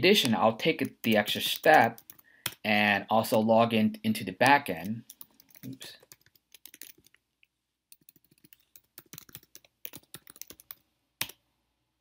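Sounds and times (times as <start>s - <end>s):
keyboard typing: 0.1s - 2.6s, 4.7s - 7.2s, 7.9s - 11.4s.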